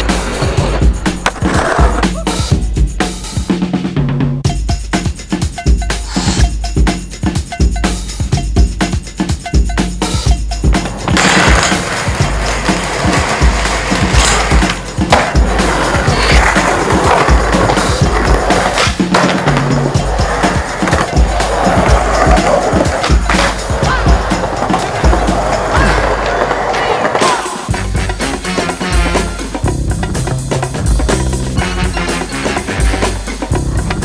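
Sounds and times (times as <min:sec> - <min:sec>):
skateboard wheels rolling on pavement: 0:00.0 - 0:02.2, 0:10.7 - 0:27.7
music with steady bass line: 0:00.0 - 0:26.2, 0:27.7 - 0:34.0
skateboard knocks and landings: 0:01.2 - 0:02.1, 0:10.7 - 0:27.6.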